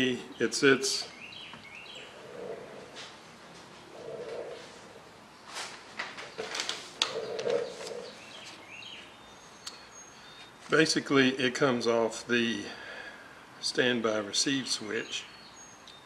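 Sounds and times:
paper rustling: 5.5 - 8.6
bird calling softly: 6.3 - 10.6.

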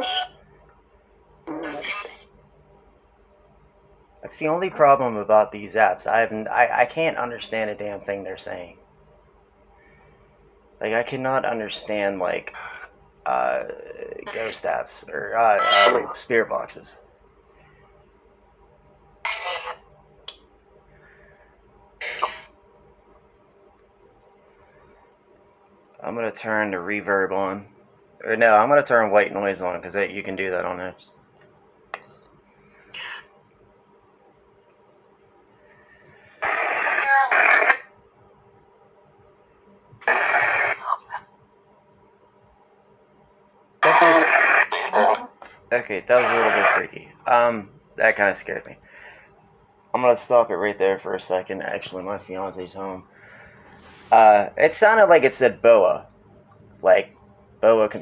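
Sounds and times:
garbled radio-like voice fragments: 0.0 - 0.4, 12.2 - 13.0, 13.6 - 14.8, 15.4 - 16.4, 19.3 - 19.8, 36.4 - 37.9, 40.0 - 41.3, 43.8 - 47.0
faint steady hum: 0.0 - 58.0.

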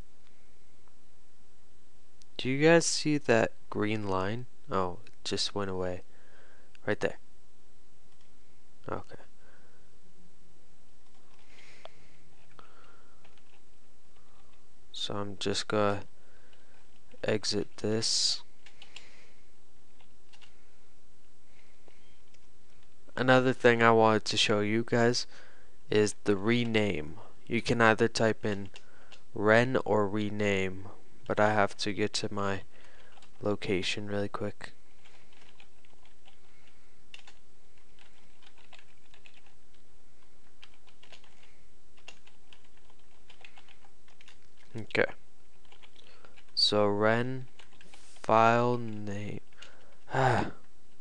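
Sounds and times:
steady background hiss: 0.0 - 51.0
computer keyboard typing: 12.3 - 14.6, 18.6 - 19.0, 20.0 - 20.6, 32.8 - 33.4, 35.0 - 39.8, 40.6 - 44.9, 45.5 - 46.6, 47.4 - 48.0.

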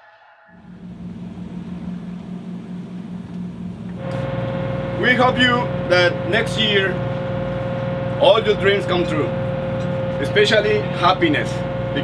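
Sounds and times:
higher-pitched hum: 0.0 - 12.0
ship machinery drone: 0.3 - 12.0.

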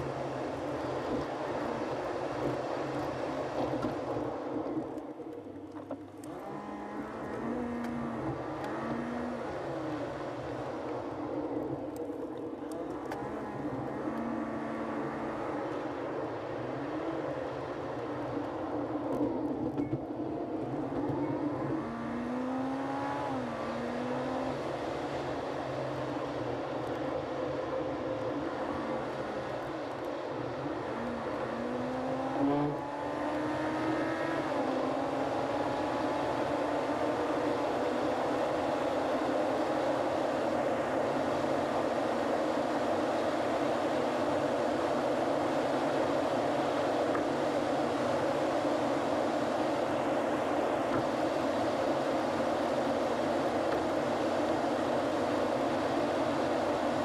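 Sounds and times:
road noise: 0.0 - 57.0
car engine accelerating: 5.8 - 12.0, 12.6 - 57.0.

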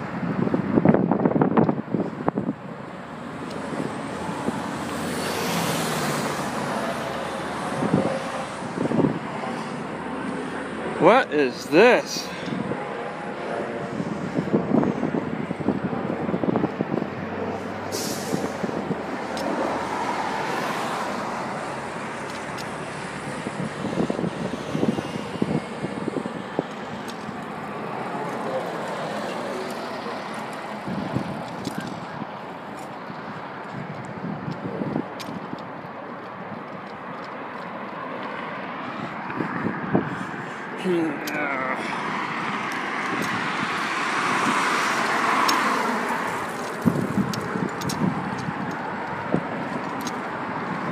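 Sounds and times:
cars passing: 0.0 - 50.9.

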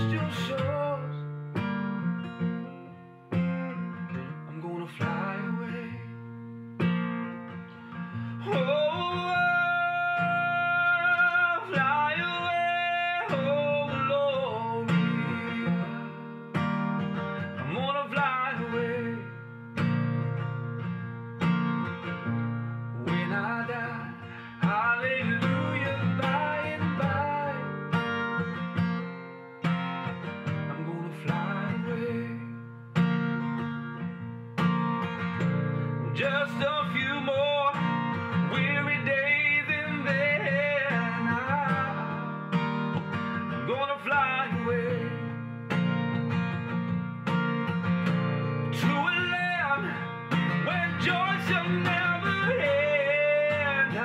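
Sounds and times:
man singing: 0.0 - 1.6, 2.8 - 20.4, 22.2 - 28.8, 30.2 - 32.7, 35.4 - 46.3, 48.0 - 54.0
acoustic guitar strumming: 0.0 - 54.0.

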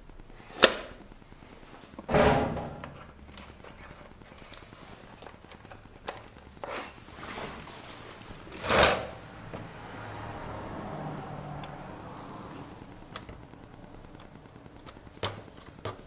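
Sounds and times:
faint high beeps: 6.8 - 7.5, 12.1 - 12.7.

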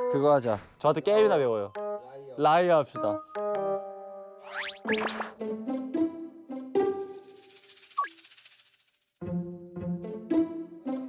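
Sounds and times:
playful string music: 1.1 - 7.6, 9.2 - 11.0.

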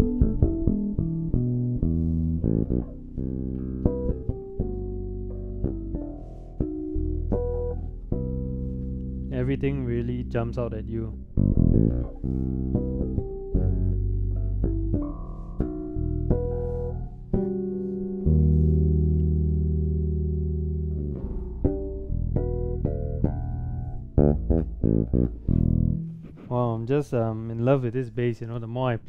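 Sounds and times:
electric bass played fingerstyle: 0.0 - 29.0.

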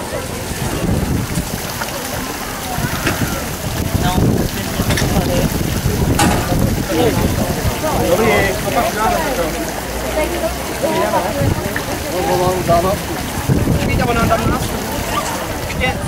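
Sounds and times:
wind rumbling on microphone: 0.0 - 8.8, 11.2 - 16.0
indistinct voices talking: 0.0 - 16.0.

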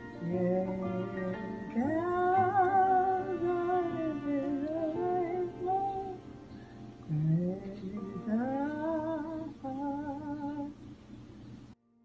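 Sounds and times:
woman humming a slow melody: 0.0 - 6.3, 7.0 - 10.8.

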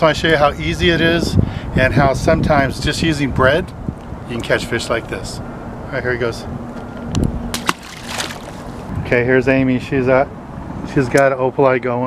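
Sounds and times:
fish splashing into water: 7.5 - 8.9.

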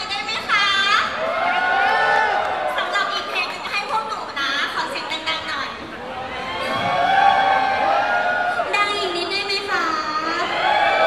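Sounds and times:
crowd cheering: 0.8 - 5.4, 6.0 - 11.0.

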